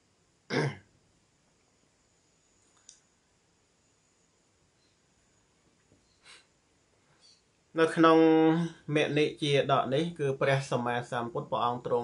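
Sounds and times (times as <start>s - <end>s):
man clearing throat: 0.5s - 0.9s
faint click: 2.6s - 3.1s.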